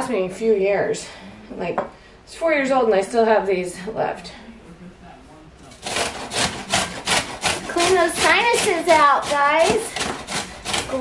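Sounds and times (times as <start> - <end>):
root grated on metal grater: 5.7 - 11.0.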